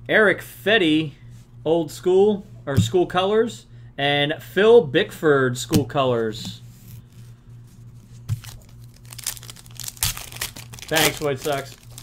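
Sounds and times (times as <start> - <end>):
low steady hum: 0.0 - 12.0
foil wrapper crinkling and tearing: 8.3 - 12.0.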